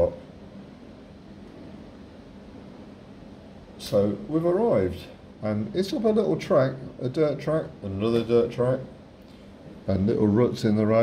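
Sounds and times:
faint hum: 0:00.0 - 0:11.0
low room hiss: 0:00.0 - 0:11.0.

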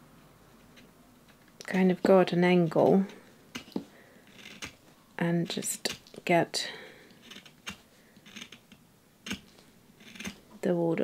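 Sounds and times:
knife shaving pencil wood: 0:02.7 - 0:04.9, 0:07.2 - 0:10.4.

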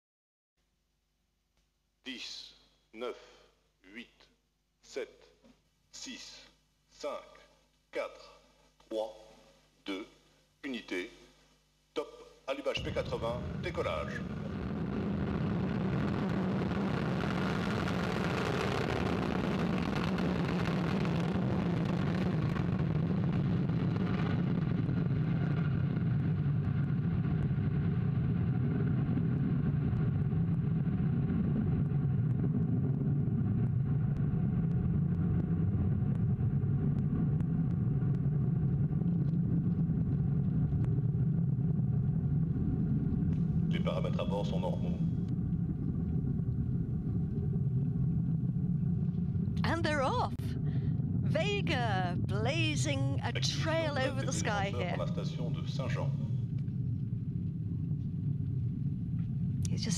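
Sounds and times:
rocket motor rumble: 0:12.8 - 0:59.9.

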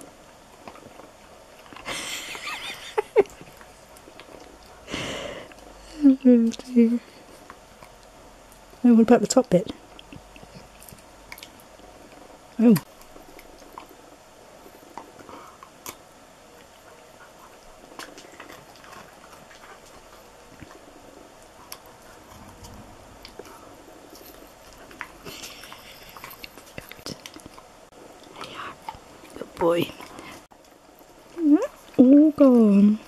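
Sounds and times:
dog chewing: 0:00.0 - 0:02.4, 0:03.2 - 0:05.7, 0:09.5 - 0:32.7.

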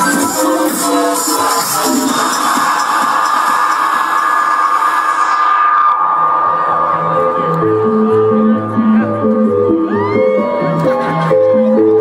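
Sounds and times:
techno beat: 0:00.0 - 0:12.0
rising noise wash: 0:03.0 - 0:08.8
low synth notes: 0:04.5 - 0:12.0.

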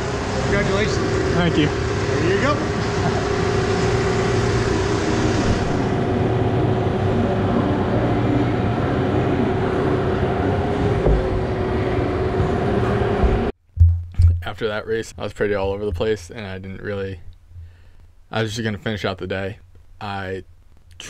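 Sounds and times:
machinery drone with low rumble: 0:00.0 - 0:13.6.

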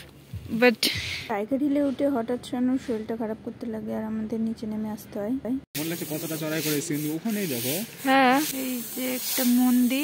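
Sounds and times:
rough hiss: 0:05.8 - 0:10.0.

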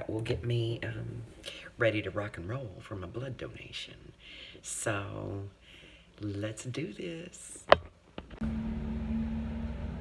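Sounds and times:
faint humming tone: 0:08.4 - 0:10.0.

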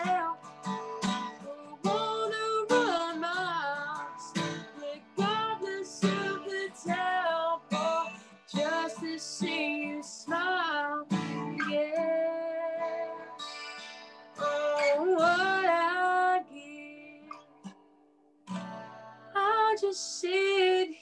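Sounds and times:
woman singing country song: 0:00.0 - 0:13.6, 0:14.4 - 0:17.8, 0:19.2 - 0:21.0
strummed acoustic guitar: 0:00.0 - 0:21.0.

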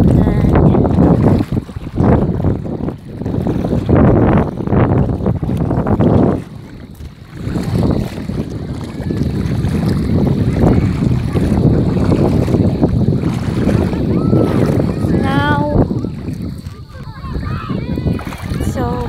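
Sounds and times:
water sloshing from wading: 0:00.0 - 0:19.0
wind buffeting microphone: 0:00.0 - 0:19.0.

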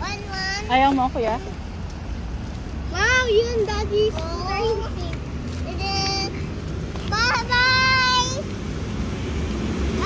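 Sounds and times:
child's high-pitched voice: 0:00.0 - 0:01.6, 0:02.8 - 0:08.5
road traffic rumble: 0:00.0 - 0:10.0.

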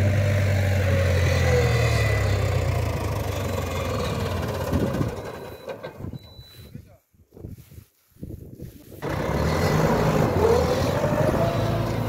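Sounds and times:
tractor diesel engine running: 0:00.0 - 0:06.5, 0:09.0 - 0:12.0.

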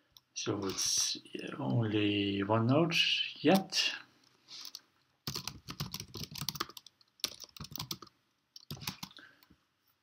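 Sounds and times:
computer keyboard typing: 0:04.6 - 0:09.2.

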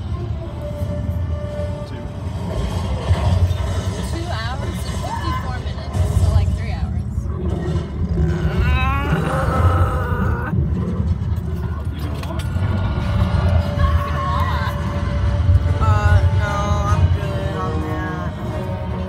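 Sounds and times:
voices: 0:11.5 - 0:19.0.

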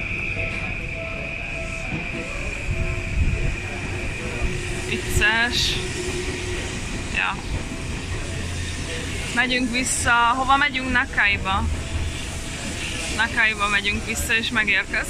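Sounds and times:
murmur of crowd: 0:00.0 - 0:15.0
train high whine: 0:00.0 - 0:15.0
train low rumble: 0:00.0 - 0:15.0.

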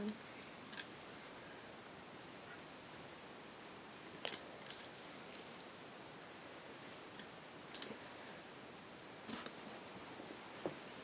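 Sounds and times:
steady low hiss: 0:00.0 - 0:11.0
rubber bands clicking on pegs: 0:07.1 - 0:08.0.

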